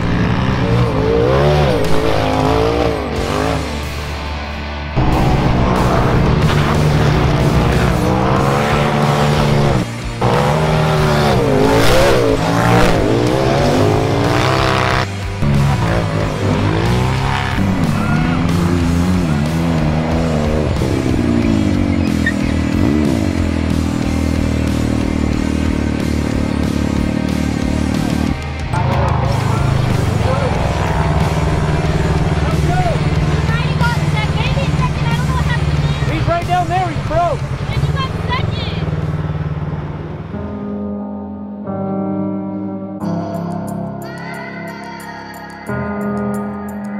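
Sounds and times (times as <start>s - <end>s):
race engines revving hard: 0.0s - 40.4s
steady engine drone: 0.0s - 40.9s
background music: 0.0s - 46.9s.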